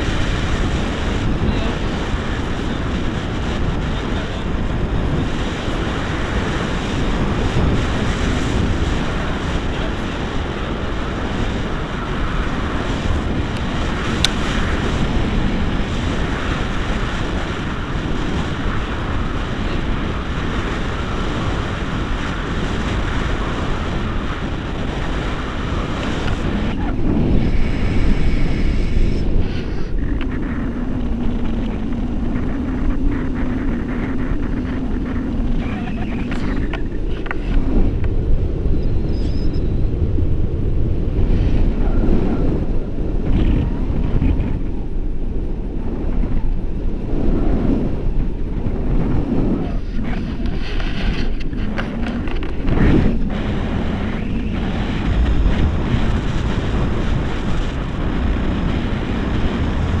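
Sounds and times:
steady low hum: 0.0s - 60.0s
wind roar on microphone: 0.0s - 60.0s.

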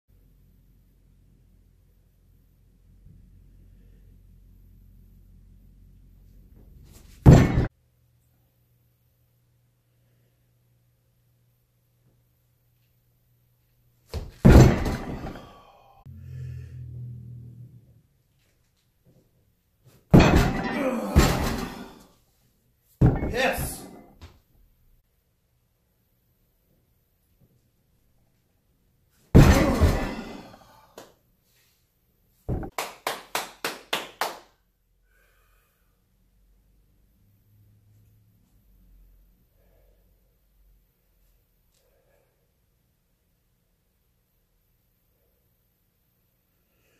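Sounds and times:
heavy impact on gym floor: 7.1s - 7.7s, 14.1s - 15.6s, 20.1s - 22.0s, 23.0s - 24.3s, 29.4s - 30.6s, 32.5s - 32.8s
heavy weight thud with ringing: 7.3s - 7.7s, 14.4s - 15.7s, 20.2s - 22.0s, 23.0s - 24.0s, 29.4s - 30.6s.

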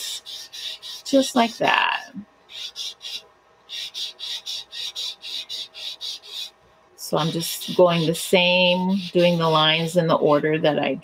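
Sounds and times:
blending stump rubbing on paper: 0.0s - 10.1s.

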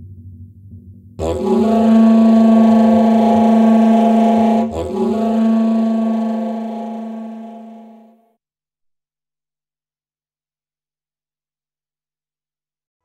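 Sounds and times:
held low musical note: 1.2s - 8.2s.

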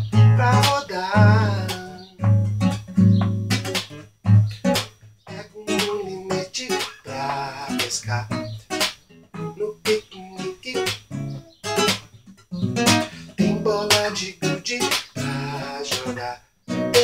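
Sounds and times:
acoustic guitar chord strokes: 0.0s - 17.0s
man singing: 0.1s - 2.2s, 5.3s - 8.6s, 9.4s - 11.1s, 13.1s - 17.0s.

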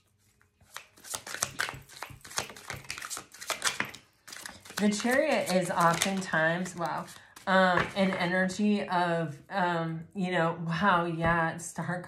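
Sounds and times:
cards being shuffled: 0.0s - 8.3s.

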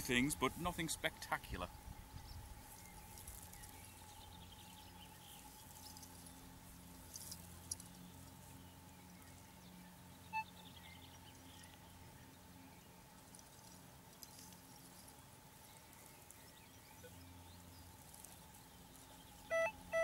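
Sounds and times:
faint steady detector tone: 10.2s - 20.0s
faint chirps: 15.7s - 20.0s
short high beep: 19.5s - 20.0s.

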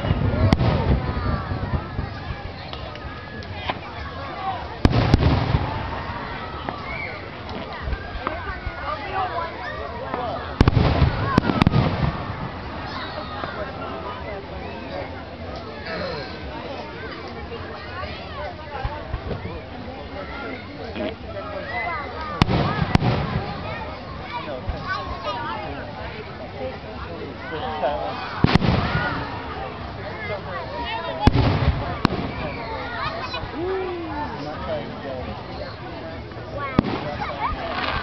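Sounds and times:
fireworks bang with rumbling boom: 0.0s - 2.7s, 4.8s - 6.8s, 10.6s - 13.6s, 22.4s - 23.8s, 28.4s - 29.7s, 31.2s - 32.8s, 36.7s - 38.0s
fireworks sharp cracks: 0.0s - 3.9s, 4.8s - 6.9s, 10.6s - 13.0s, 22.4s - 23.8s, 28.4s - 29.6s, 31.2s - 32.8s, 36.8s - 38.0s.

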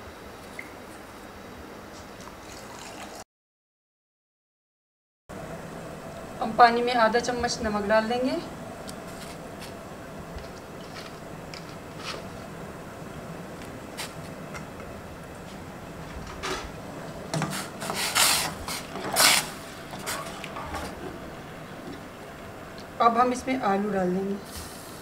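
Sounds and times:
short scraping noises: 17.5s - 20.4s.

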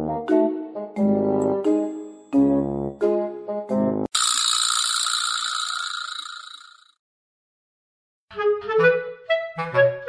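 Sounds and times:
high shimmering jingle: 4.2s - 6.9s.

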